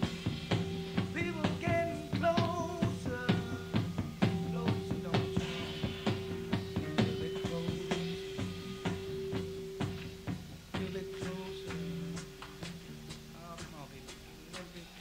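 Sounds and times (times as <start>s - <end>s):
drum beat: 0.0s - 15.0s
rock band playing live: 0.0s - 15.0s.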